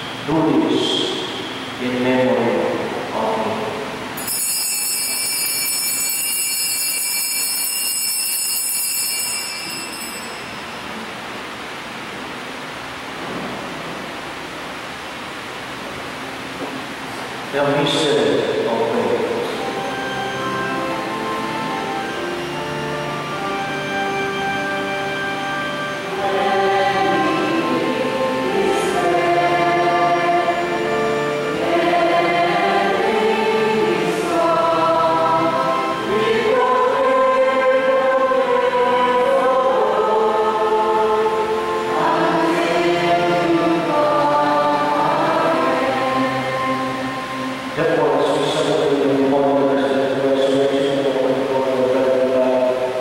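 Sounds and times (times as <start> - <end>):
choir singing a chant: 26.0 - 52.8.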